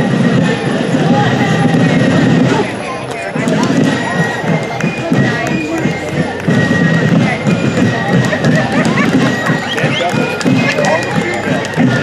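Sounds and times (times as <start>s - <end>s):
fife and drum band playing: 0.0s - 12.0s
people talking: 0.0s - 12.0s.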